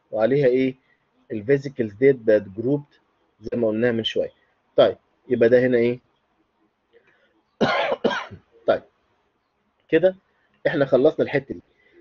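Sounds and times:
man coughing: 7.6 - 8.4.

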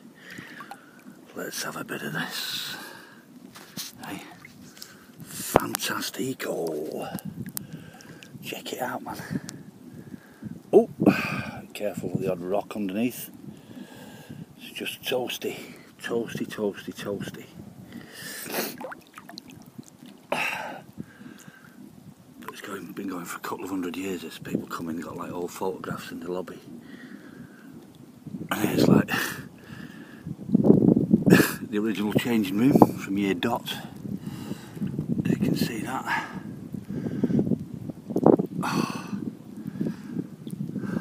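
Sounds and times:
water trickling: 0.2 - 1.4, 5.6 - 10.4, 18.5 - 21.7
small water ticks: 0.2 - 1.7, 3.4 - 11.9, 18.7 - 28.2, 31.9 - 35.2, 39.5 - 41.0
wind buffeting microphone: 3.4 - 41.0.

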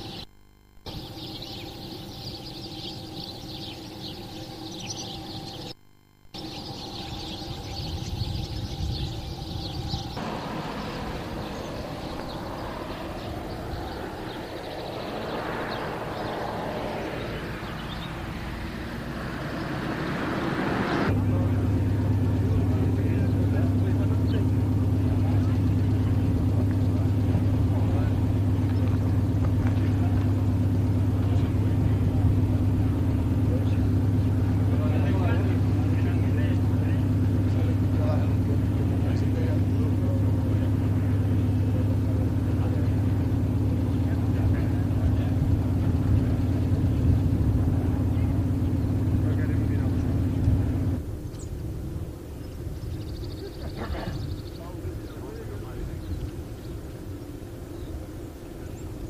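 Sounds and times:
engine idling: 0.0 - 59.0.

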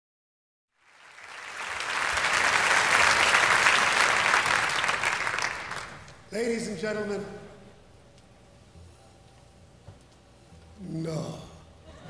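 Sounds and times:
audience applauding: 0.8 - 6.2.

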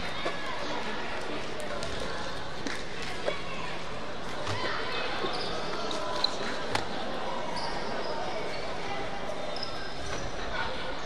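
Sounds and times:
echoing voices in a gym: 0.0 - 11.0
sneakers squeaking on floor: 4.4 - 10.5.

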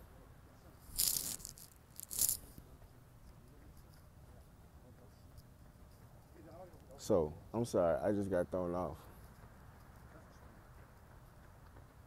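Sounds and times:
high-pitched rattles: 0.9 - 2.4.

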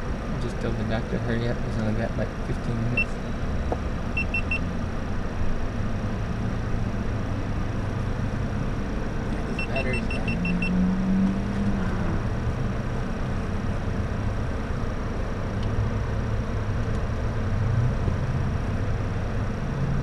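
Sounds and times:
car engine idling: 0.0 - 19.6
short high-pitched beeps: 4.2 - 4.7, 9.5 - 10.8.

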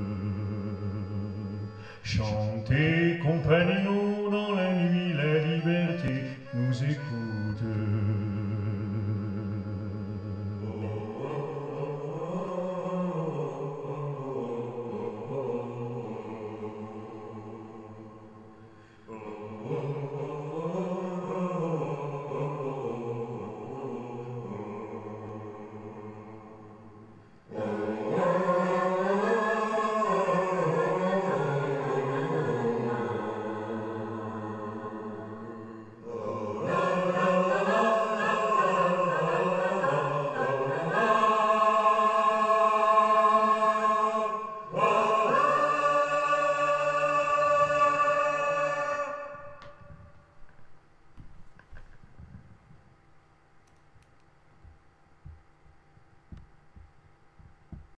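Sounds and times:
person humming a slow melody: 0.0 - 26.8
faint steady hum: 0.0 - 58.0.

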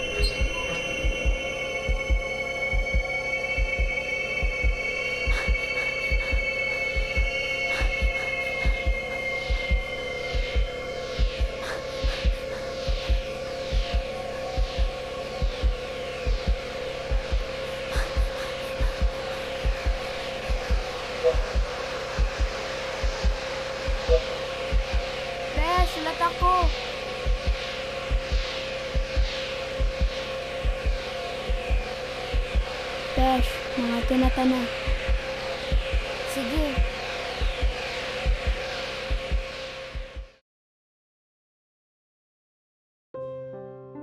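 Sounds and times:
electronic drone with throbbing pulse: 0.0 - 40.4.

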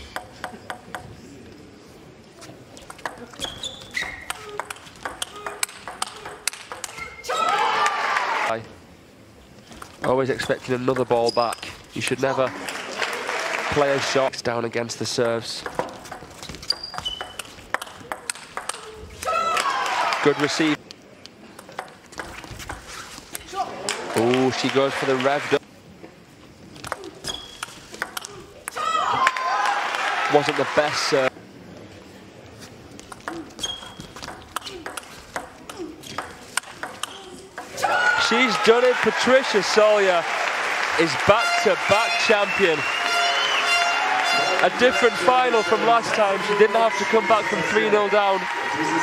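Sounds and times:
shoe squeaks on floor: 3.4 - 4.4, 11.2 - 11.8, 16.4 - 17.6, 27.2 - 27.8, 33.5 - 34.8
table tennis ball clicking: 4.2 - 7.0, 15.6 - 18.9, 34.2 - 37.7
table tennis ball ticking: 4.2 - 7.0
crowd applause and cheering: 7.4 - 8.5, 12.5 - 14.2, 19.2 - 20.8, 23.8 - 25.6, 28.9 - 31.3, 37.8 - 49.0.

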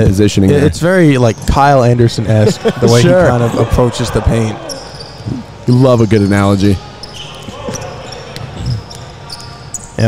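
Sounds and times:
hall background noise: 0.0 - 10.0.

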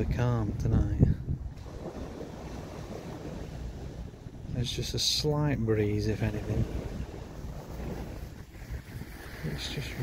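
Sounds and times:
sea washing against slipway: 0.0 - 10.0.

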